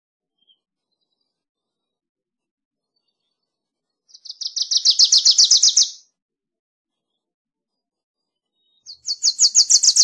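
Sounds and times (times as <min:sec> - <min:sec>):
warbler singing rapid chip notes: 0:04.1 - 0:06.0, 0:08.9 - 0:10.0.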